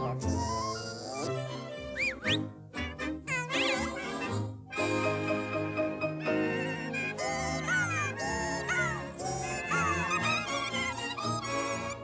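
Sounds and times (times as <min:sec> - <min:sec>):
orchestral cartoon music: 0:00.0 - 0:12.0
squeaky cartoon animal cries: 0:00.2 - 0:02.2, 0:03.3 - 0:04.3, 0:06.3 - 0:12.0.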